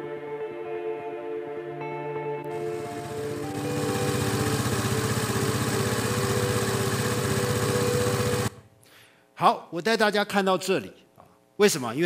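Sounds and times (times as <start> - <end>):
soft background music: 0.0 - 5.0
motor scooter engine running: 2.5 - 8.7.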